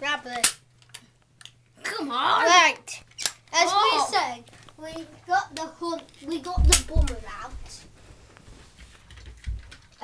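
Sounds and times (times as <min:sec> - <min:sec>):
dull low thump: 0:06.5 - 0:07.8.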